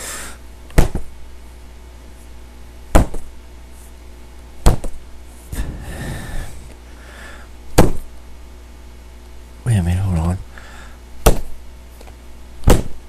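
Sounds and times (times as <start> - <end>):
strikes on cushion pad: 0.7 - 1.2, 2.9 - 3.4, 4.6 - 5.0, 7.7 - 8.1, 11.2 - 11.6, 12.6 - 13.0
soft rustle or breath: 5.3 - 7.5.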